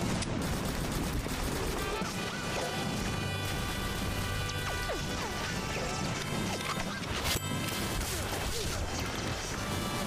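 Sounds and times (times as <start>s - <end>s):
music: 1.9s - 10.0s.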